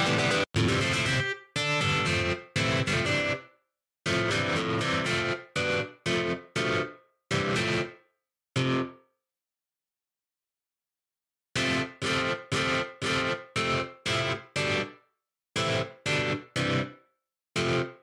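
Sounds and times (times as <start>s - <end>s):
distorted electric guitar strumming: 0.0s - 3.4s, 4.1s - 7.9s, 17.6s - 17.9s.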